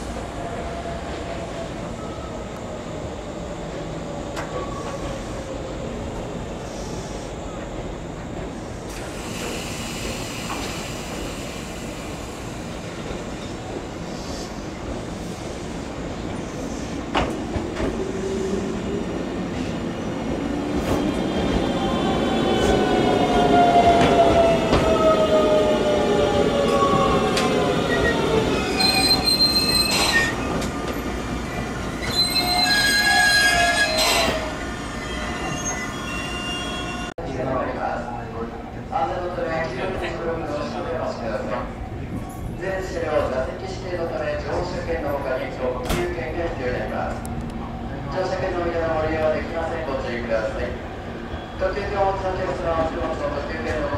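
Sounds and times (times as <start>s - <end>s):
electric train rumble: 0.0s - 37.1s
high brake squeals: 27.9s - 30.4s, 32.0s - 37.1s.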